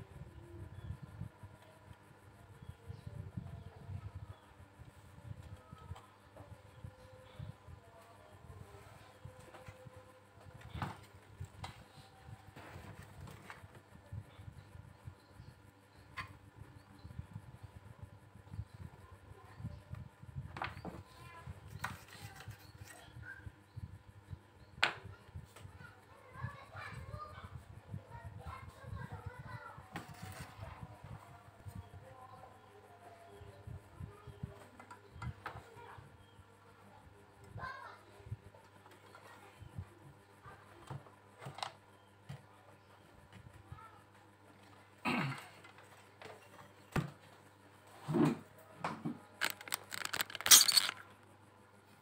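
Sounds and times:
sharp clicks: 49.4 - 51.0.

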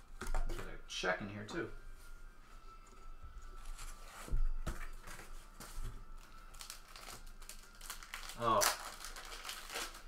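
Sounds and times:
plastic sleeve crinkling: 6.1 - 10.0.

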